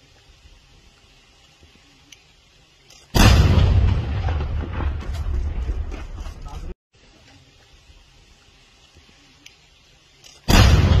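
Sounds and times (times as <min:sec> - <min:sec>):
explosion blast with rumbling tail: 0:03.2 - 0:06.4, 0:10.5 - 0:11.0.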